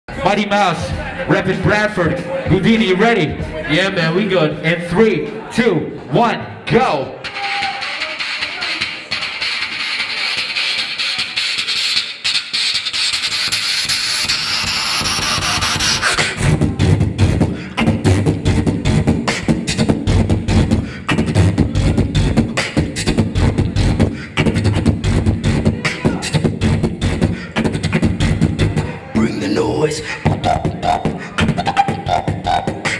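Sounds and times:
beatboxed bass kicks: 0:00.1 - 0:03.7, 0:07.2 - 0:32.9
beatboxed snare-like clicks: 0:07.2 - 0:28.9, 0:30.1 - 0:32.9
beatboxing hiss sweeping upward: 0:07.3 - 0:28.9, 0:29.8 - 0:32.9.

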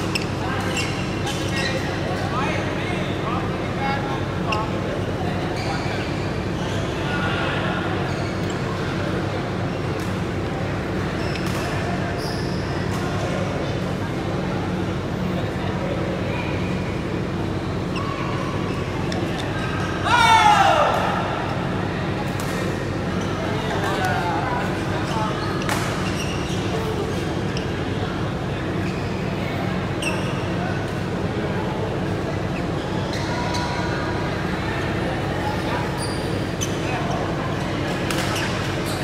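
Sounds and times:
court shoe squeaking on floor: 0:00.0 - 0:03.2, 0:04.4 - 0:07.1, 0:08.0 - 0:08.7, 0:10.9 - 0:13.0, 0:17.8 - 0:20.0, 0:25.0 - 0:27.9, 0:28.6 - 0:30.8, 0:32.4 - 0:34.1, 0:35.6 - 0:37.4, 0:38.0 - 0:39.0.

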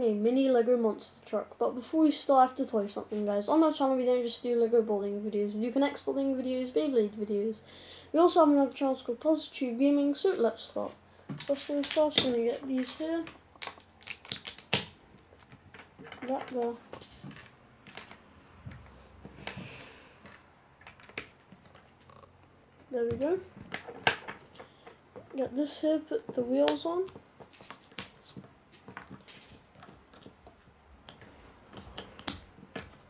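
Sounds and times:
plastic bricks clicking together: 0:11.4 - 0:18.2.

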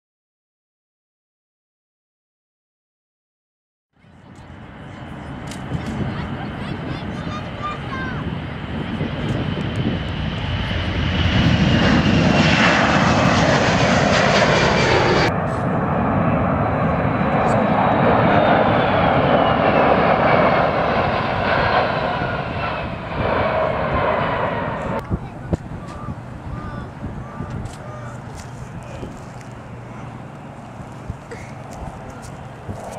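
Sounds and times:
high jet whine: 0:04.0 - 0:32.9
jet engines at take-off thrust: 0:04.0 - 0:32.9.

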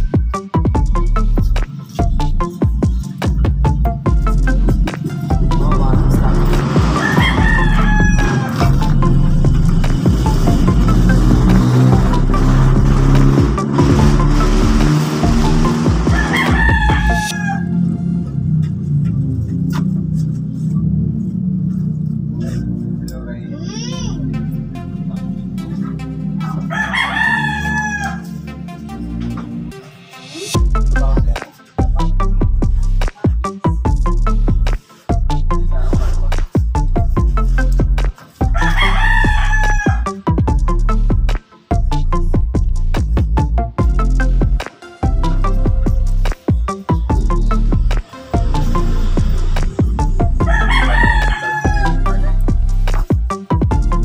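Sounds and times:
background music: 0:00.0 - 0:54.0
rooster crowing: 0:06.7 - 0:08.9, 0:16.0 - 0:18.0, 0:26.6 - 0:28.4, 0:38.4 - 0:40.2, 0:50.4 - 0:52.5.

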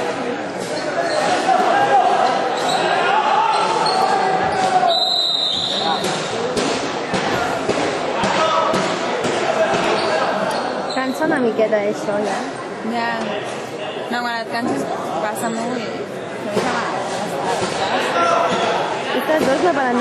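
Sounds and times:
voices calling and chattering: 0:00.0 - 0:20.0.

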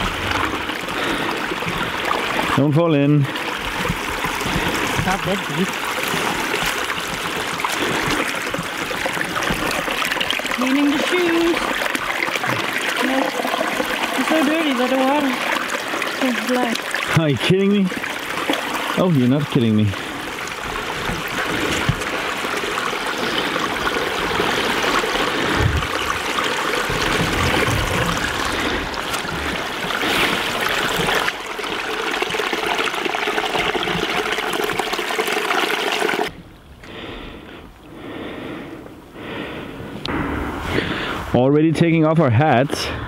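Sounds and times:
stream trickling over stones: 0:00.0 - 0:36.8.

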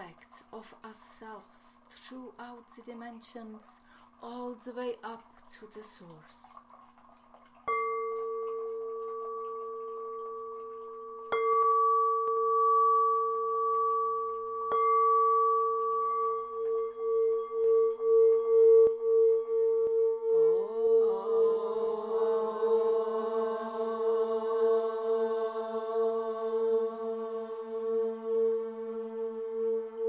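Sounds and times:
singing bowl ringing: 0:07.7 - 0:30.0
voices chanting: 0:20.6 - 0:30.0.

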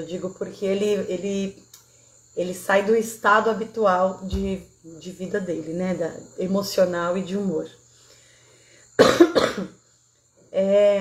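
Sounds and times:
woman coughing: 0:09.0 - 0:09.8.

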